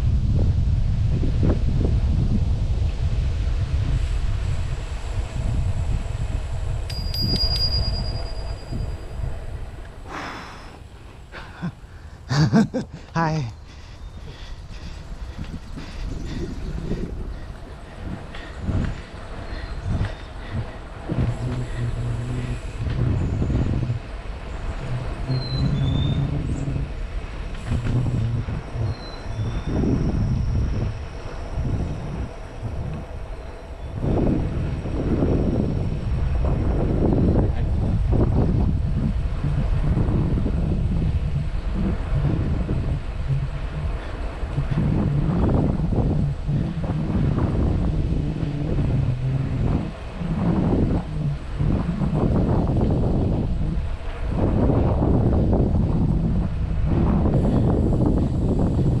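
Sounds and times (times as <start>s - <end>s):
wind rumble on microphone: 0.0s - 59.0s
bicycle bell ringing: 6.8s - 9.3s.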